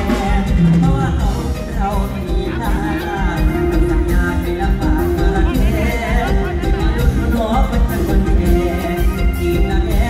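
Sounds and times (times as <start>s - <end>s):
live band music: 0.0s - 10.0s
person singing: 0.0s - 10.0s.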